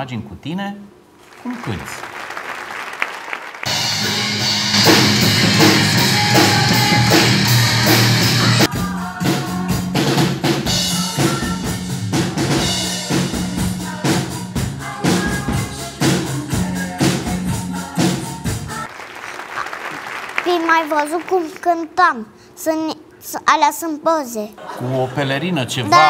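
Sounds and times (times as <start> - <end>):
held bass notes: 3.7 - 9.7
band music: 3.7 - 18.9
drum kit steady beat: 3.7 - 18.9.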